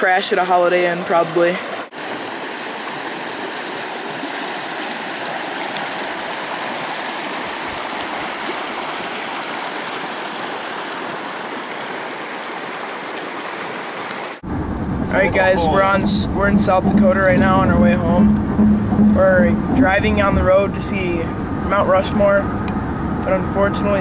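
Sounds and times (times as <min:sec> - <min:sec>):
river rushing over rocks: 0:00.0 - 0:14.4.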